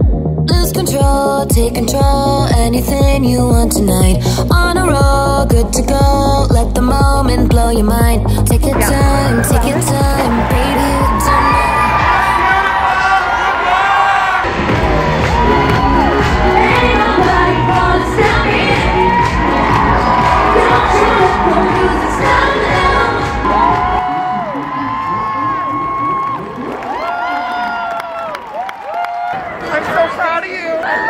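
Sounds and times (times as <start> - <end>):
live pop music with heavy bass: 0.0 - 13.6, 14.4 - 26.3
crowd screaming and cheering: 8.7 - 31.0.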